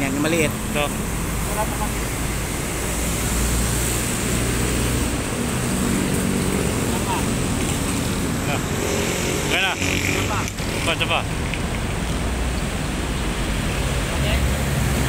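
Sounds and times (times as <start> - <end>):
engine hum: 0.0 - 15.0
road traffic noise: 0.0 - 15.0.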